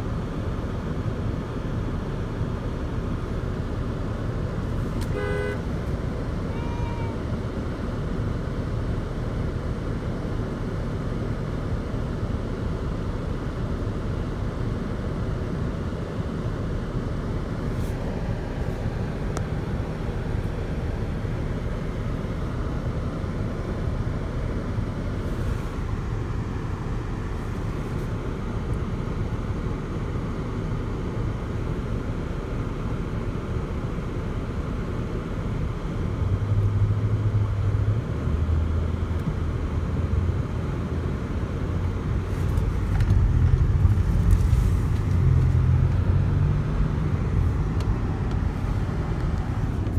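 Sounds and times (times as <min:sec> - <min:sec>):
car engine: 0:00.0 - 0:49.9
road noise inside car: 0:00.0 - 0:49.9.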